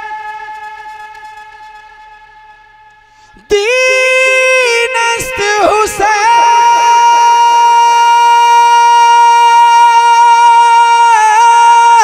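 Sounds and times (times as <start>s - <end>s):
man singing a long high note: 0.0s - 1.7s, 3.3s - 12.0s.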